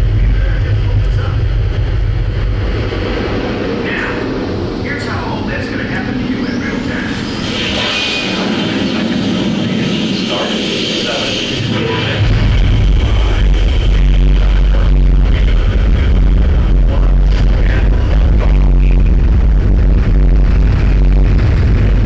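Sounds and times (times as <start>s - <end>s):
deep rocket rumble: 0.0s - 22.0s.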